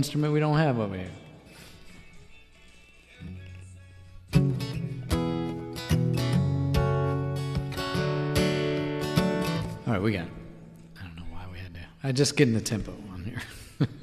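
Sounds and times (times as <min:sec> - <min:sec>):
acoustic guitar strumming: 0:04.3 - 0:11.6.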